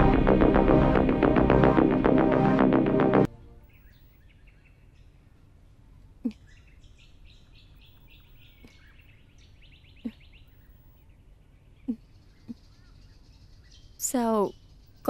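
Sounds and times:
background music: 0.0s - 3.9s
birds chirping: 3.6s - 15.0s.

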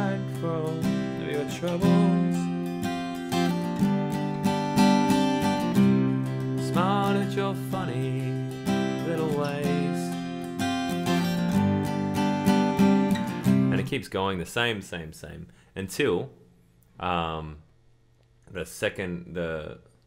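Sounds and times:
acoustic guitar strumming: 0.0s - 14.0s.

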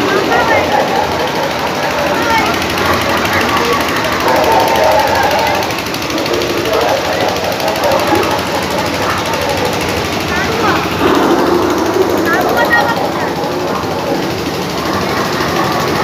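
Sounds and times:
crowd of voices: 0.0s - 16.0s
rapid mechanical rattle: 0.0s - 16.0s.

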